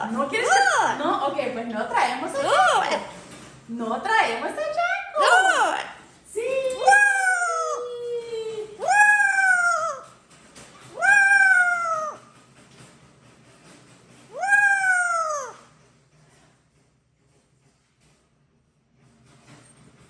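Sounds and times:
parrot calling: 0:10.9 - 0:12.3, 0:14.3 - 0:15.7.

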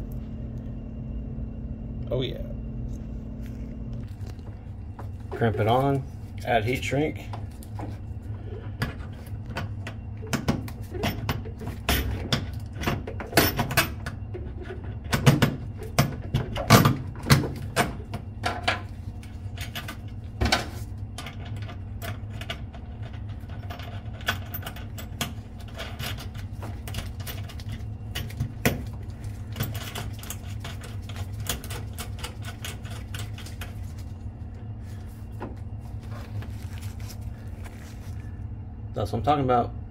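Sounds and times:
steady low hum: 0:00.0 - 0:39.9
metal clicking and clinking: 0:21.2 - 0:33.8.

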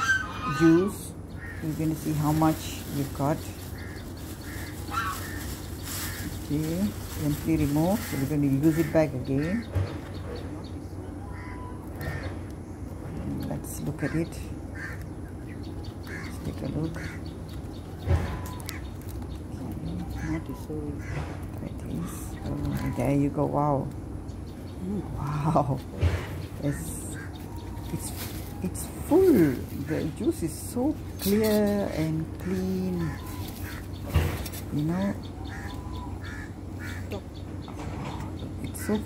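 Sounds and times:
geese honking: 0:00.0 - 0:02.6, 0:03.6 - 0:06.7, 0:07.6 - 0:09.7, 0:34.9 - 0:37.4
leaves rustling: 0:00.0 - 0:10.1, 0:11.0 - 0:37.1
bird calling: 0:00.0 - 0:39.0.

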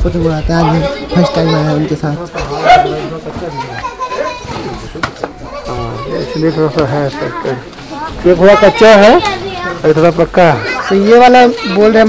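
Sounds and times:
adults and children talking: 0:00.0 - 0:12.0.

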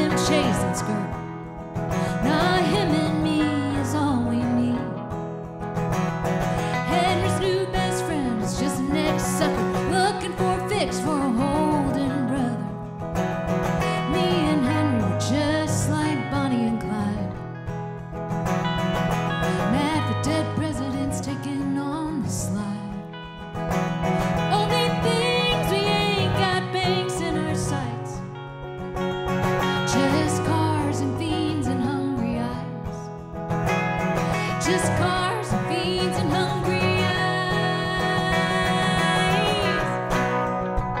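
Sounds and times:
woman singing: 0:00.0 - 0:05.2, 0:06.5 - 0:13.0, 0:13.8 - 0:17.5, 0:19.4 - 0:23.3, 0:24.5 - 0:28.3, 0:29.8 - 0:33.2, 0:34.2 - 0:40.2
acoustic guitar strumming: 0:00.0 - 0:41.0
electric guitar: 0:00.0 - 0:41.0.

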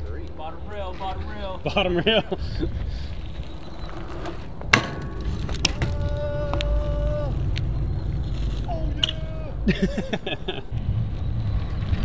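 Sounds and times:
steady low rumble: 0:00.0 - 0:12.0
bike pegs clanking on metal rail: 0:03.9 - 0:06.9.

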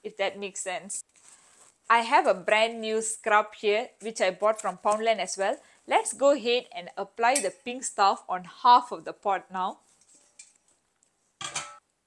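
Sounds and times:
metal pot clunking on stone counter: 0:11.4 - 0:11.8.

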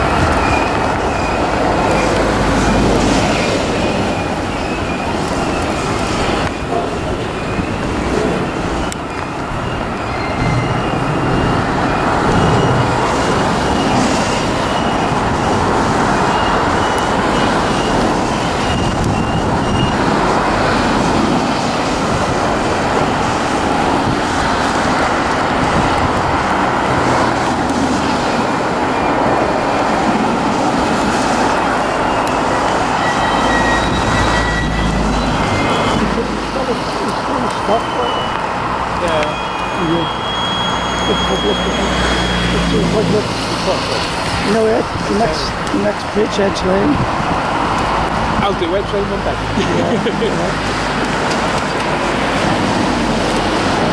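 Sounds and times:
train wheels running on rails: 0:00.0 - 0:53.9
faint high wheel squeals: 0:06.5 - 0:20.1, 0:31.8 - 0:36.2, 0:37.3 - 0:43.0.

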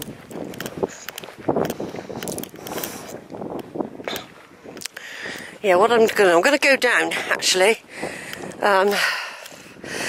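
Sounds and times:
soft footsteps on grass: 0:00.0 - 0:06.8
wind buffeting microphone: 0:00.0 - 0:10.0.

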